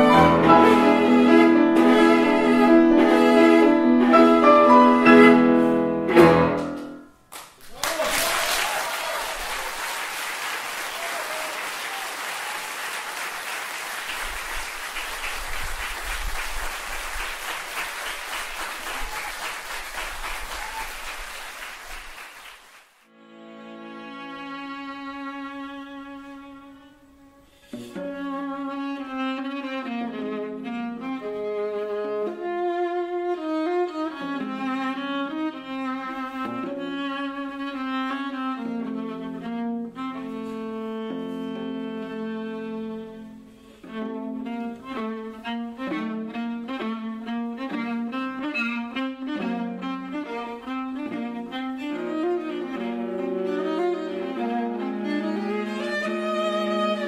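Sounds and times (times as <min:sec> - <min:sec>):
bowed viola duet: 0:00.0 - 0:06.8, 0:23.1 - 0:57.0.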